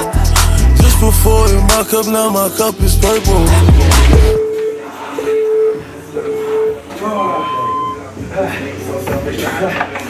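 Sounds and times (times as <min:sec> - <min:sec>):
rap music with heavy bass: 0:00.0 - 0:04.4.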